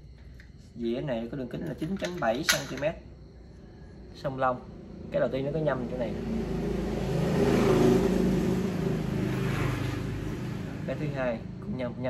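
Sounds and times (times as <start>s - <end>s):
vehicle engine passing by: 4.6s - 12.0s.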